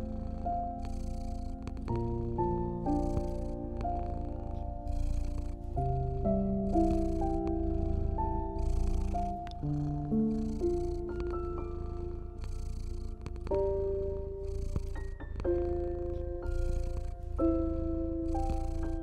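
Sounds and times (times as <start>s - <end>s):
cat purring: 0.0s - 19.0s
soft piano melody: 0.0s - 19.0s.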